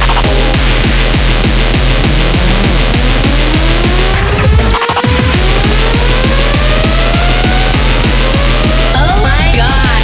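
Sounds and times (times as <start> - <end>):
quick drum roll: 0.0 - 8.9
fast hardcore electronic music: 0.0 - 10.0.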